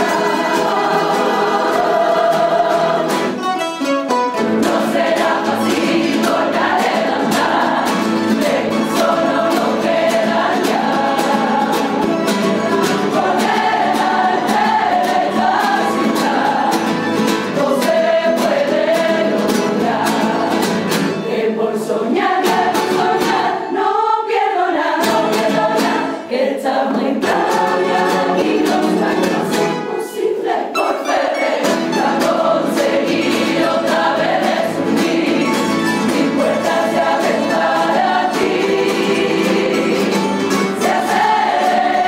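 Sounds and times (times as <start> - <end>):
choir singing: 0.0 - 3.5, 4.4 - 42.0
strummed guitars and lutes: 0.0 - 24.1, 25.0 - 42.0.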